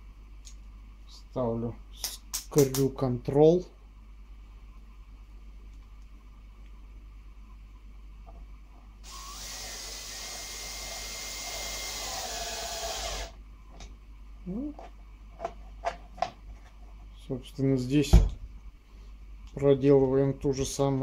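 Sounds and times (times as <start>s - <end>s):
cordless drill motor whine: 9.0s - 13.4s.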